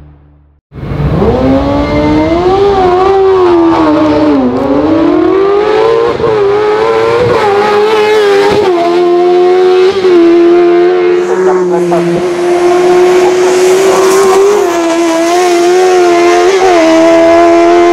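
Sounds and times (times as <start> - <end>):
motorcycle engine revving hard: 0.8 - 17.9.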